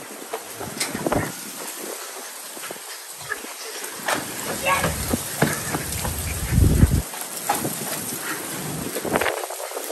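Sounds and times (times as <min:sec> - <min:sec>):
steady rain falling: 0:00.0 - 0:09.9
loud low rumble: 0:05.0 - 0:07.0.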